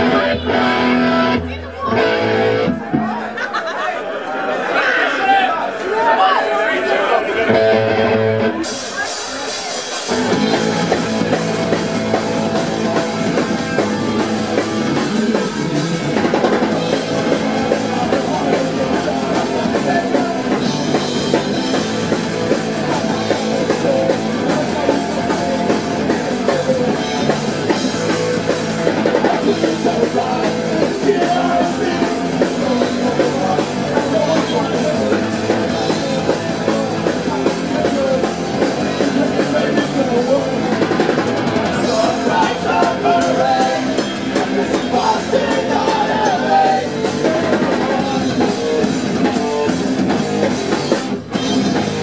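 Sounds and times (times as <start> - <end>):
electric guitar: 0.0 - 3.3, 7.5 - 52.0
punk rock band playing: 0.0 - 3.8, 7.3 - 52.0
drum kit: 8.4 - 52.0.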